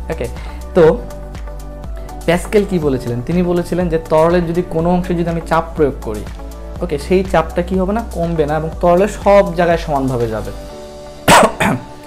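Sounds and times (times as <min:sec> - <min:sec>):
person speaking: 0:00.0 - 0:01.3, 0:02.1 - 0:10.7.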